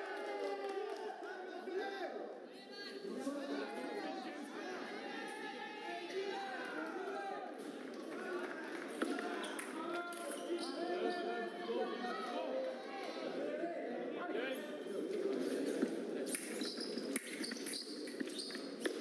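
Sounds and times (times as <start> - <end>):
voices echoing in a hall: 0.0 - 19.0.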